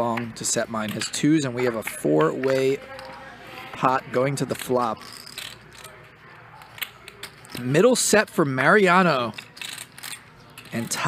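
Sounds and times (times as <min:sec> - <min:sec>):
poker chips clicking: 0:04.5 - 0:06.0, 0:09.0 - 0:11.0.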